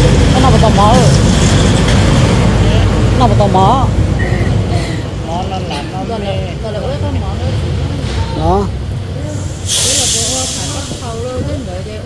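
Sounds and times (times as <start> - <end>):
chatter of voices: 2.5 - 12.0
loud hiss: 9.2 - 11.4.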